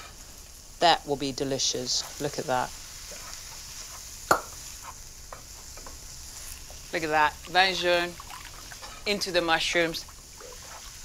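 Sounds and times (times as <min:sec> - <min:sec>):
faint sizzle: 0:00.0 - 0:11.0
wooden spoon stirring in metal pan: 0:01.2 - 0:11.0.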